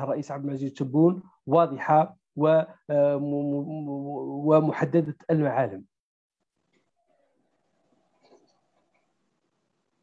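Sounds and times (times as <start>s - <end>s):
man speaking: 0.0s - 5.9s.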